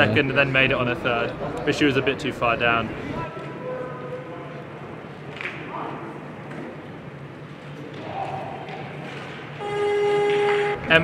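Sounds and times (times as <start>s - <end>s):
competition hall crowd noise: 0.0s - 11.0s.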